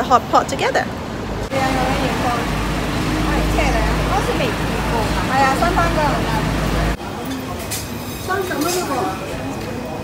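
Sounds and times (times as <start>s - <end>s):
indistinct chatter of people: 0.0s - 10.0s
low rumble of traffic: 0.0s - 10.0s.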